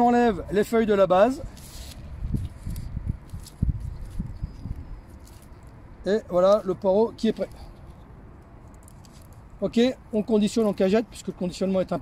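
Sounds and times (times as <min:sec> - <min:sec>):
leaves rustling: 0:01.0 - 0:11.4.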